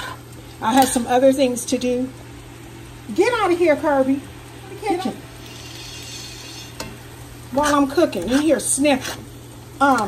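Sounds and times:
cabbage sizzling in a pot: 0:00.0 - 0:10.0.

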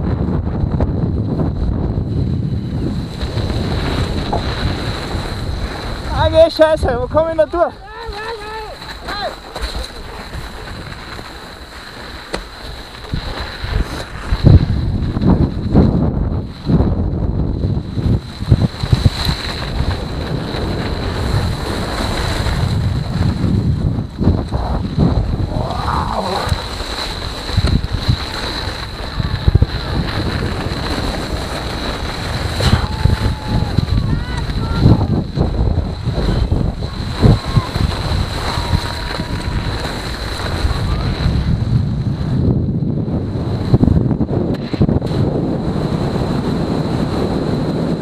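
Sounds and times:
wind buffeting a camera: 0:00.0 - 0:48.0
bike jolts and rattles: 0:01.1 - 0:32.6.

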